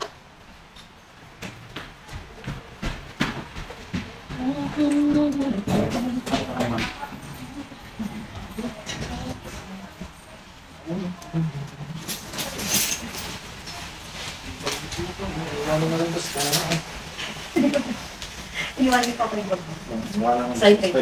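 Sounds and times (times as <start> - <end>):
low murmured voices: 1.6 - 17.6
cloth rustling and flapping: 11.9 - 21.0.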